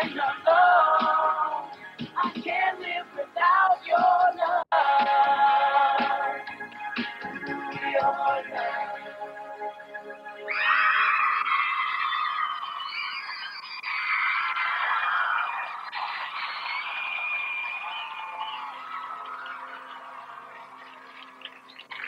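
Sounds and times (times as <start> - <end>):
audience screaming and cheering: 10.4 - 22.0
faint music: 15.6 - 22.0.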